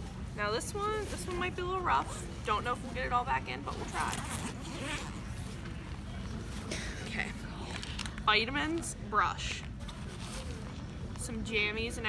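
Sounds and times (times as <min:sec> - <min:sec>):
backpack zipper rasping: 0:03.7 - 0:05.7.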